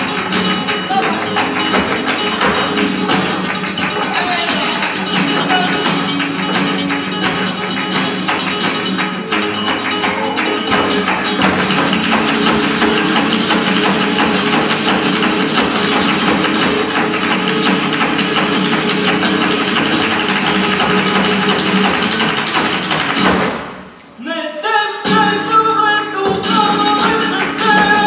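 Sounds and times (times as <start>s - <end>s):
hand-clapping: 0.0s - 24.1s, 26.3s - 28.0s
flamenco guitar: 0.0s - 28.0s
person singing: 0.8s - 1.5s, 4.0s - 6.0s, 9.9s - 10.9s, 24.2s - 28.0s.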